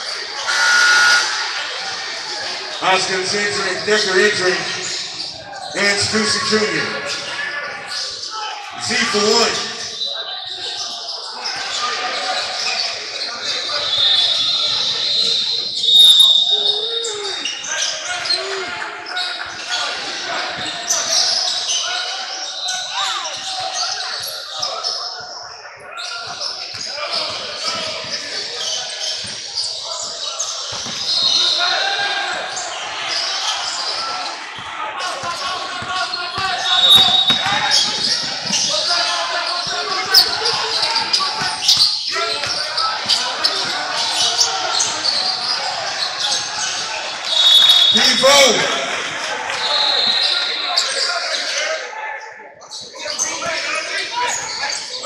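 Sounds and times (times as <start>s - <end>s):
echoing voices: 0.0s - 15.8s, 31.8s - 55.0s.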